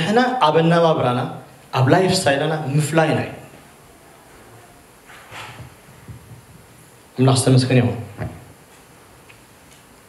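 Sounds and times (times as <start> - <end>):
man speaking into a microphone: 0.0 - 3.5, 7.2 - 8.4.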